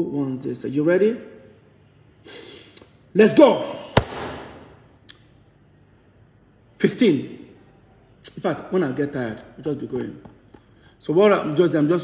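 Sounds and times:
sharp smack: 0:03.9 - 0:04.8.

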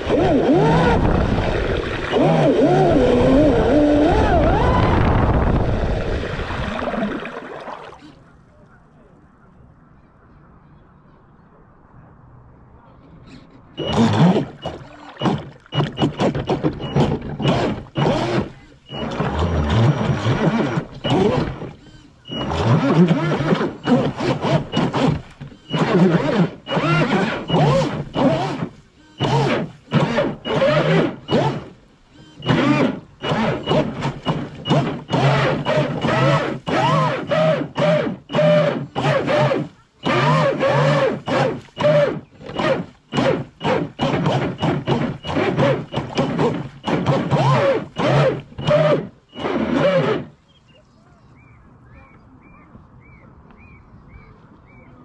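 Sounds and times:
toy boat motor revving: 0:00.0 - 0:07.4, 0:13.8 - 0:50.4.

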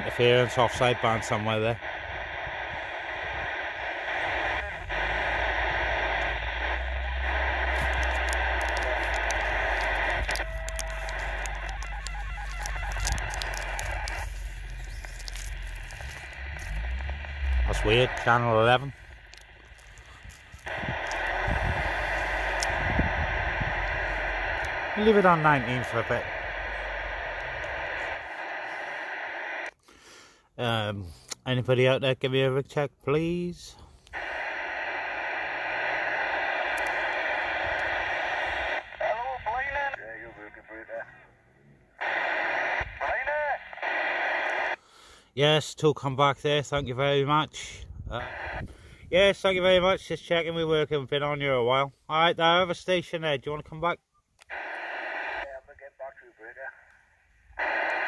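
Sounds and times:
radio static hissing: 0:00.0 - 0:29.8, 0:33.2 - 0:45.8, 0:46.6 - 0:53.7, 0:54.4 - 0:58.0
low rumble: 0:02.0 - 0:28.3.

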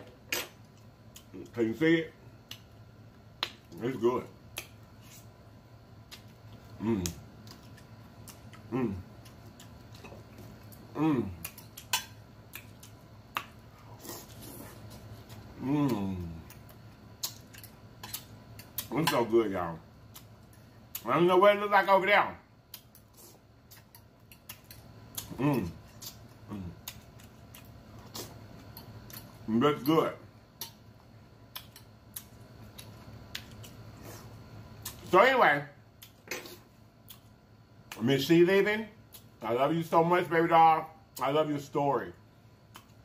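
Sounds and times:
soft chewing: 0:00.6 - 0:01.6, 0:02.4 - 0:03.9, 0:04.5 - 0:19.3, 0:20.0 - 0:21.1, 0:22.7 - 0:30.0, 0:30.6 - 0:35.1, 0:35.9 - 0:38.0, 0:42.6 - 0:43.0.

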